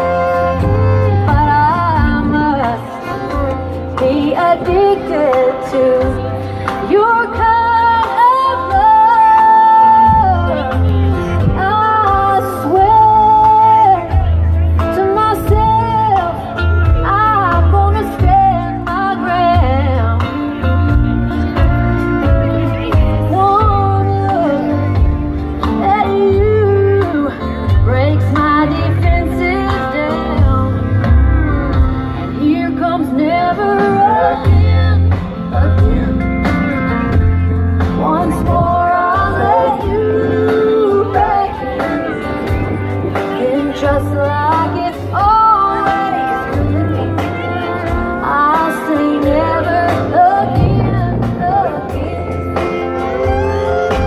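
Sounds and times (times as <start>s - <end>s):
live country band playing: 0.0s - 54.0s
sliding lead melody: 0.0s - 54.0s.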